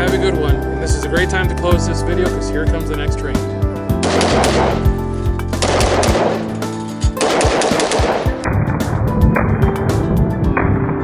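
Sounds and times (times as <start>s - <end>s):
background music: 0.0s - 11.0s
rifle shots: 4.0s - 8.6s.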